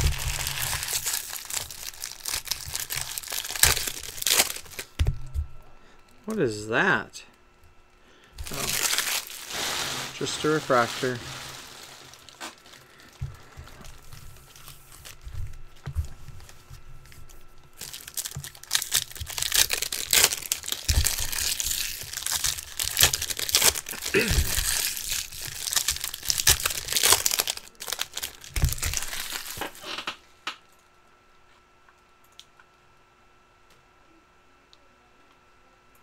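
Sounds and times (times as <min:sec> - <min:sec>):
foil wrappers crinkling and tearing: 0:00.0 - 0:05.1, 0:08.4 - 0:30.1.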